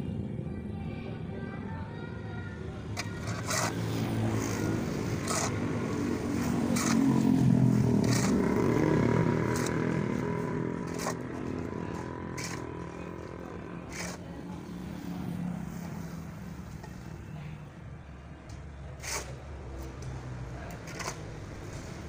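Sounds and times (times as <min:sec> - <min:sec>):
passing vehicle engine: 0:02.8 - 0:17.7
shovel scraping through mortar: 0:03.0 - 0:14.4, 0:19.0 - 0:19.4, 0:20.7 - 0:21.3.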